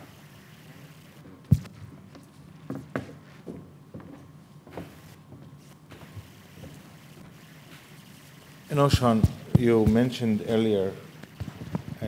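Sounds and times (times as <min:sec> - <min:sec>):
faint soft footsteps: 0:01.3 - 0:08.0.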